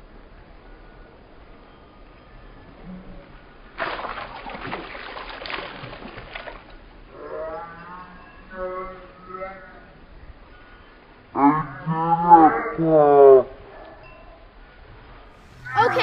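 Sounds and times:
splash into swimming pool: 0:03.8 - 0:06.8
water churning: 0:03.8 - 0:06.8
child's voice: 0:15.7 - 0:16.0.

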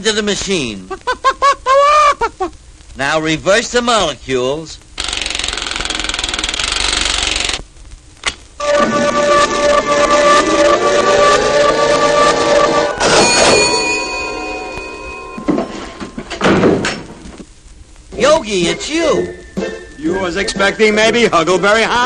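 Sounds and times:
hissing buzz: 0:04.8 - 0:21.2
upward gliding electronic sweep: 0:08.6 - 0:15.3
electronic bursts: 0:08.6 - 0:16.4
steady electronic tones: 0:08.6 - 0:17.0, 0:17.8 - 0:22.0.

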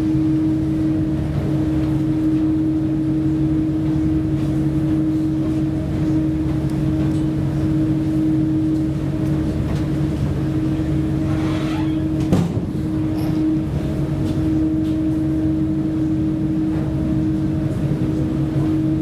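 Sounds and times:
ferry engines droning: 0:00.0 - 0:19.0.

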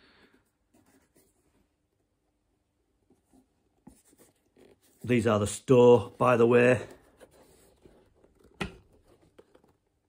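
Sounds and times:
hands handling leather boots: 0:03.0 - 0:10.0.

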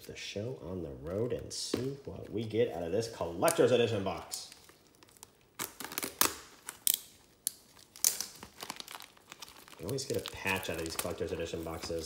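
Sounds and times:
cardboard ripping and crinkling: 0:04.6 - 0:07.0, 0:07.7 - 0:12.0.

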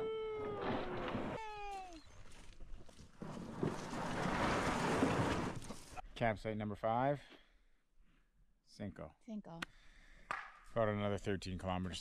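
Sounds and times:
person crying out: 0:00.0 - 0:02.0
gear scraping on gravel: 0:02.2 - 0:06.0.

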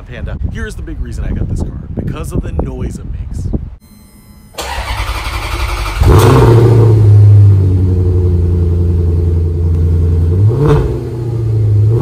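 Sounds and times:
car engine starting and idling: 0:04.5 - 0:12.0
starter motor cranking: 0:04.6 - 0:06.4.

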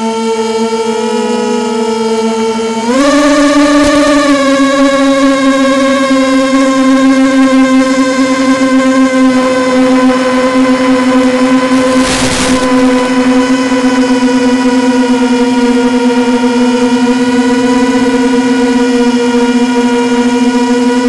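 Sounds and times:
drone motors buzzing whine: 0:00.0 - 0:21.0
radio static burst: 0:11.7 - 0:13.8.

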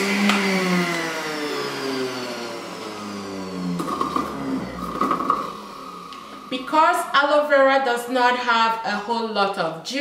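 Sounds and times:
juicer motor whining: 0:00.0 - 0:07.4.

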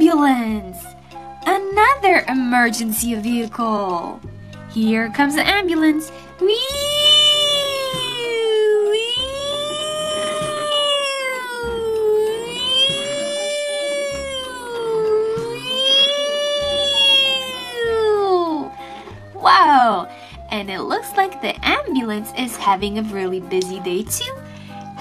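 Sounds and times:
toy ambulance siren wail: 0:06.5 - 0:19.0.

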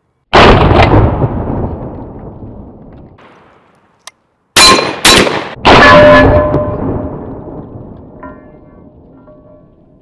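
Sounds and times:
shotgun shots: 0:04.6 - 0:06.7
shotgun shot echo: 0:04.6 - 0:06.8
steel targets ringing: 0:04.6 - 0:07.0.

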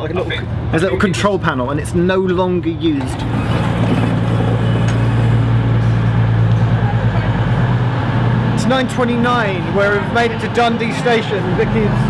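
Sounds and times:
diesel train engines droning: 0:00.0 - 0:12.0.

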